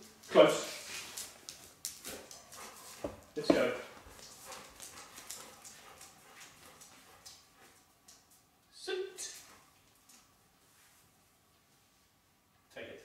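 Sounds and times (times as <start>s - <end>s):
footsteps on tiled floor: 0.6s - 7.8s.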